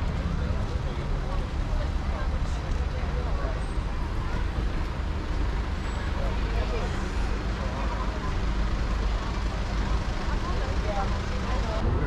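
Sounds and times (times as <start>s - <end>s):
low traffic rumble: 0.0s - 12.0s
passers-by chattering: 0.0s - 12.0s.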